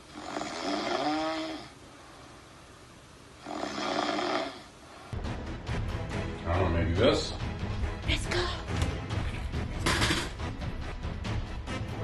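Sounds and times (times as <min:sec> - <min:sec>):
person snoring: 0:00.0 - 0:01.8, 0:03.4 - 0:04.7.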